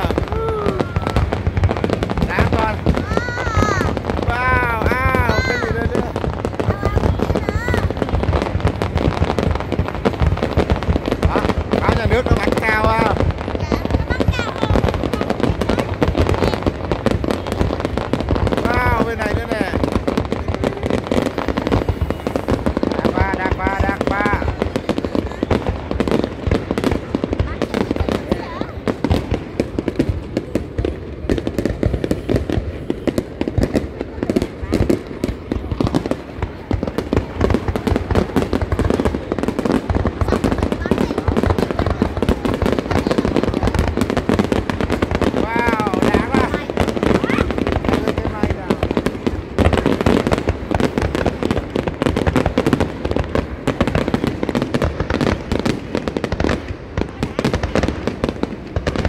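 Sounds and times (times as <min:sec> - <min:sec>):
crowd voices: 0:00.0 - 0:59.0
fireworks bangs and crackles: 0:00.0 - 0:59.0.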